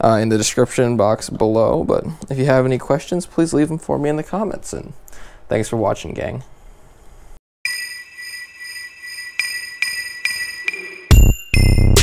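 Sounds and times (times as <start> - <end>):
bright electronic chime tone: 7.6 - 12.0.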